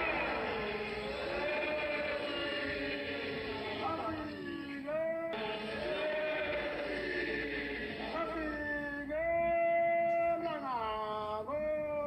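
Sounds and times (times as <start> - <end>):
voices chanting in held notes: 0.0 - 8.6.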